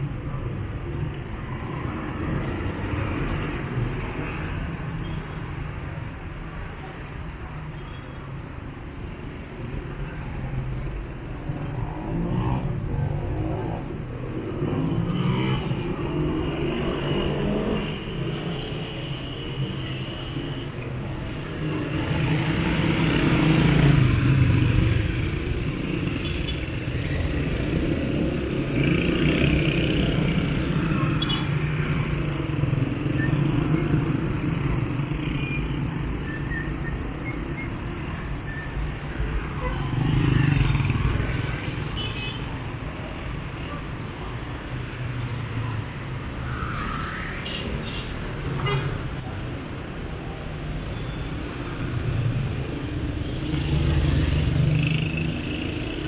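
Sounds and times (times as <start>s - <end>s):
cars passing: 20.8s - 56.0s
motorcycles passing: 21.4s - 35.3s, 38.8s - 42.0s, 51.4s - 56.0s.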